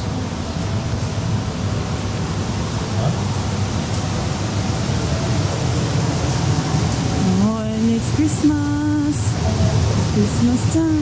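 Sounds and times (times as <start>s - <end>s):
ventilation rushing: 0.0s - 11.0s.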